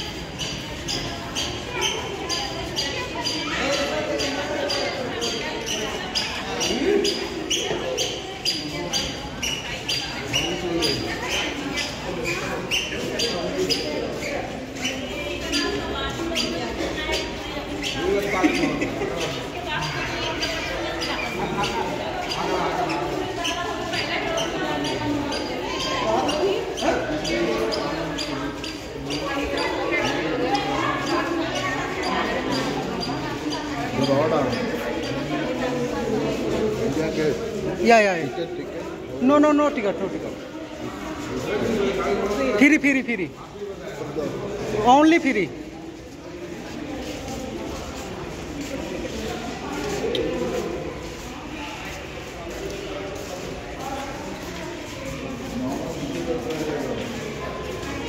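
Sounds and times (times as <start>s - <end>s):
chatter of voices: 0.0s - 58.0s
footsteps on tiled floor: 0.0s - 58.0s
footsteps on stone floor: 43.6s - 58.0s.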